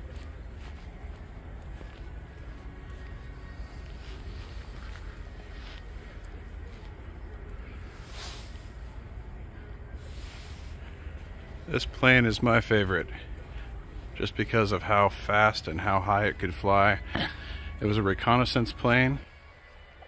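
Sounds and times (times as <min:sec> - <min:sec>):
steady low hum: 0:00.0 - 0:19.3
faint voices: 0:00.0 - 0:20.0.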